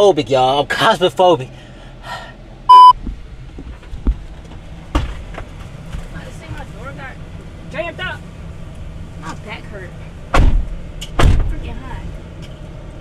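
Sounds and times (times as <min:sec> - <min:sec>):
car doors slamming: 0:10.3 - 0:11.6.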